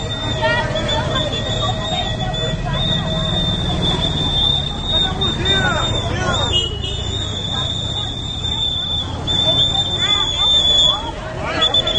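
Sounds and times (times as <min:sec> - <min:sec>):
voices of people in street: 0:00.0 - 0:11.9.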